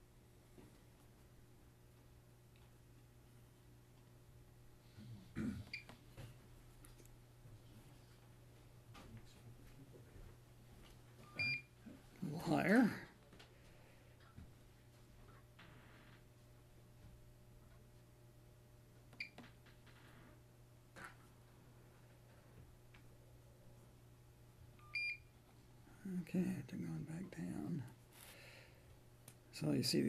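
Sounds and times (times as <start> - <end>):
low steady hum: 0.0 - 30.0
electronic meter beep: 11.2 - 11.7, 24.8 - 25.3.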